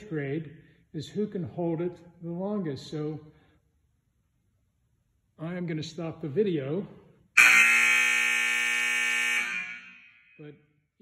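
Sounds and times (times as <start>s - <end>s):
scoreboard buzzer blast: 7.4s - 10.4s.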